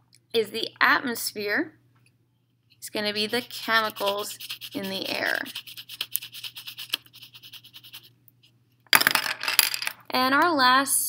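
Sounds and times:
pencil shading on paper: 0:03.0 - 0:08.1
rustling scrape: 0:03.1 - 0:08.1.

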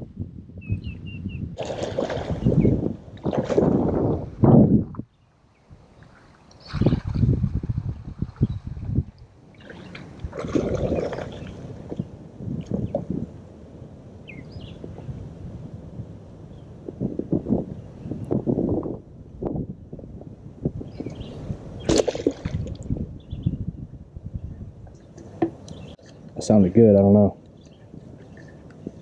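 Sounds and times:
water splash: 0:01.6 - 0:04.2, 0:09.5 - 0:12.0, 0:21.8 - 0:22.9
muddy water sloshing: 0:01.6 - 0:04.3, 0:05.9 - 0:12.0, 0:21.8 - 0:22.9.

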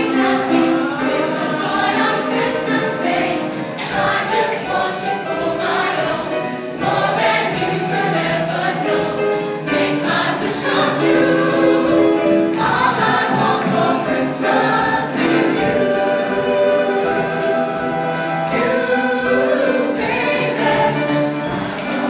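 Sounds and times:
mixed choir singing in harmony: 0:00.0 - 0:22.0.

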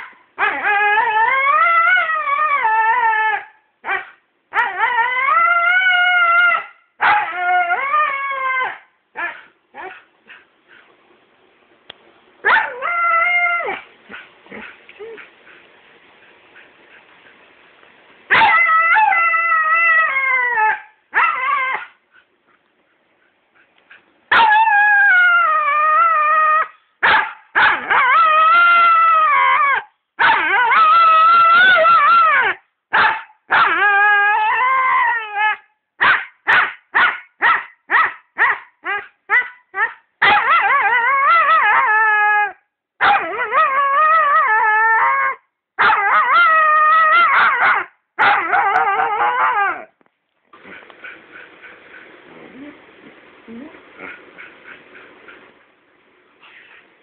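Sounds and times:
dog howling and whining: 0:00.4 - 0:10.0, 0:12.5 - 0:13.8, 0:18.3 - 0:22.0, 0:24.3 - 0:26.8, 0:27.6 - 0:32.6, 0:33.5 - 0:35.7, 0:38.4 - 0:49.9
dog yipping: 0:06.6 - 0:07.4, 0:18.3 - 0:19.0, 0:20.6 - 0:21.9, 0:24.3 - 0:24.7, 0:26.6 - 0:28.2, 0:29.7 - 0:34.0, 0:35.5 - 0:40.9, 0:43.0 - 0:43.6, 0:45.8 - 0:46.5, 0:47.2 - 0:49.8.

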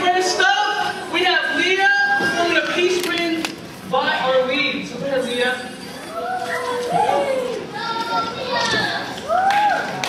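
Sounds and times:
young voices calling out and chattering: 0:00.0 - 0:10.0.

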